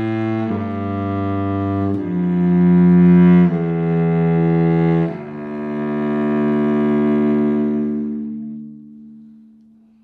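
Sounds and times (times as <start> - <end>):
cello bowed note: 0.0 - 10.0.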